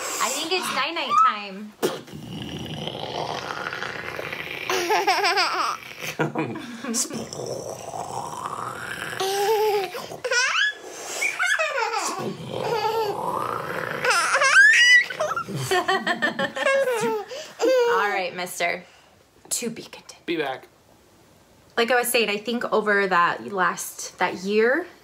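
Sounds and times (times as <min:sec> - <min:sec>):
baby giggling and squealing: 0:04.7 - 0:06.2, 0:09.2 - 0:13.2, 0:14.0 - 0:15.6, 0:16.6 - 0:18.1.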